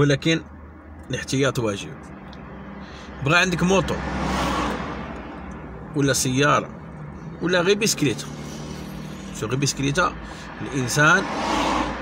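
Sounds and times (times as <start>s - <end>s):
car low hum: 0.0s - 12.0s
road noise whoosh: 1.8s - 12.0s.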